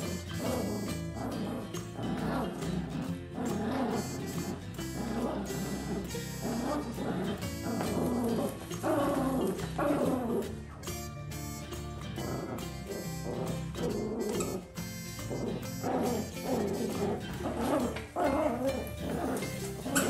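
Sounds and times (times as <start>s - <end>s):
small dogs barking and yipping: 0.0s - 11.6s, 12.2s - 20.0s.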